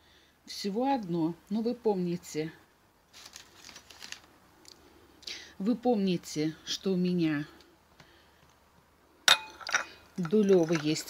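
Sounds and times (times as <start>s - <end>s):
teacup clinking on saucer: 9.3s - 11.0s.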